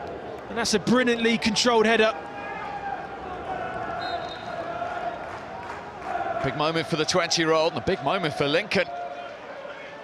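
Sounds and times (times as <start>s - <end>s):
stadium crowd noise: 0.0s - 10.0s
faint crowd chant: 2.4s - 6.8s.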